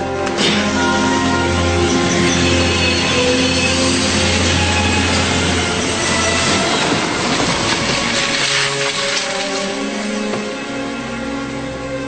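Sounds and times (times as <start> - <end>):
background music: 0.0 - 12.0
train rumble and wheel clatter: 0.0 - 12.0.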